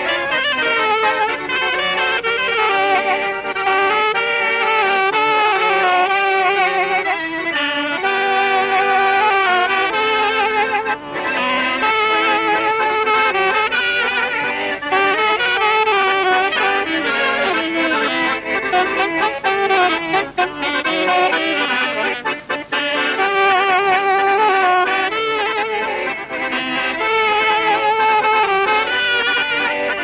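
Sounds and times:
accordion: 0.0s - 30.0s
saxophone: 0.0s - 30.0s.

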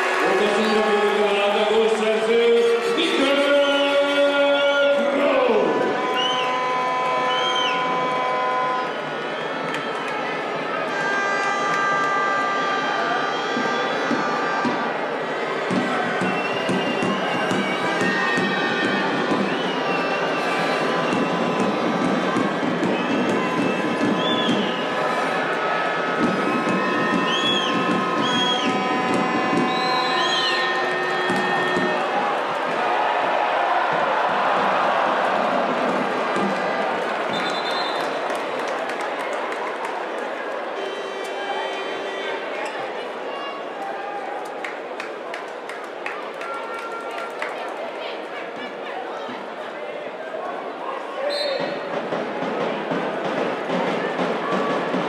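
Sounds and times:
crowd din: 0.0s - 55.0s.

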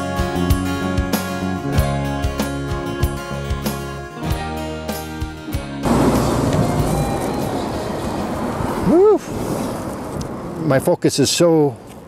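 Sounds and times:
truck passing by: 5.8s - 10.8s.

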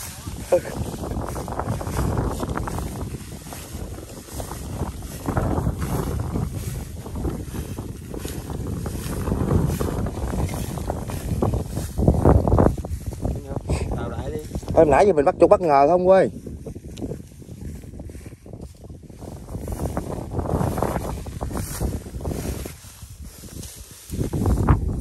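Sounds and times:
footsteps in dry straw: 0.0s - 25.0s
wind buffeting microphone: 0.0s - 25.0s.

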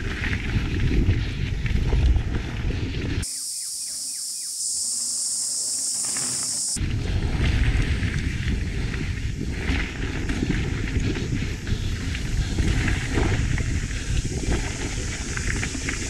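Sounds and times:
bike tyres rumbling on dirt: 0.0s - 3.2s, 4.7s - 16.0s
wind buffeting microphone: 0.0s - 3.3s, 6.7s - 16.0s
steady high-pitched hiss: 3.2s - 6.8s.

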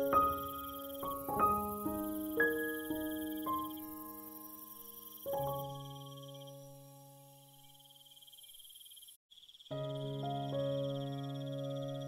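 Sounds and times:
soft piano music: 0.0s - 8.1s, 9.7s - 12.0s
insects chirring: 0.0s - 12.0s.

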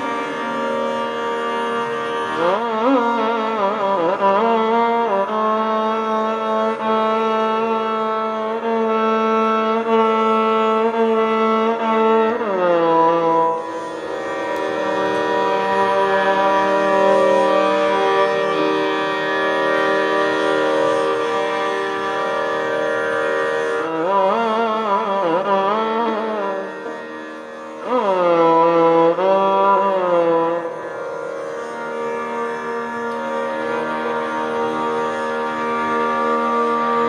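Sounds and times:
violins playing: 0.0s - 7.8s, 12.2s - 37.0s.

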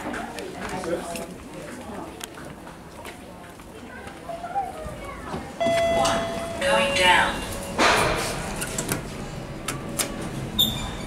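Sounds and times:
steady held tone: 5.6s - 8.0s.

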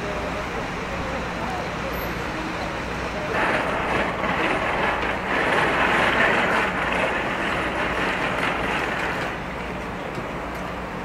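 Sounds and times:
low machine hum: 0.0s - 11.0s
noisy rush: 0.0s - 11.0s.

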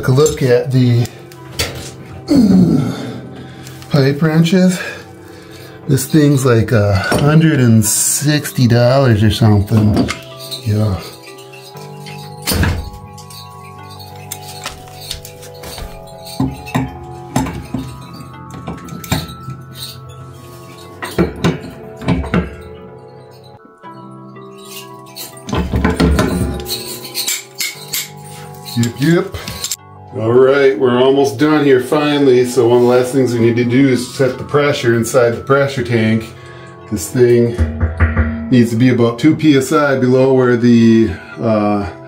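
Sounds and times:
background music with held notes: 0.0s - 42.0s
pipe wrench clinking on metal: 5.9s - 29.8s.

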